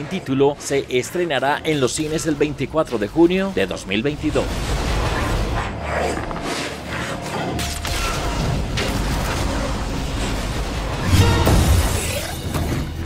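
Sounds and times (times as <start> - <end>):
film music score: 0.0 - 13.0
metallic crashing and shattering: 7.8 - 13.0.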